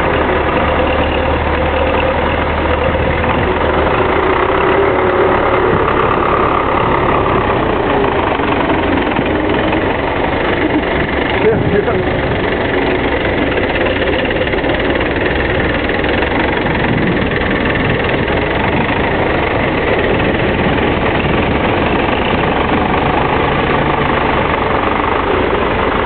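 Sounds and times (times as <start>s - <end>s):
diesel tractor engine running: 0.0s - 26.0s.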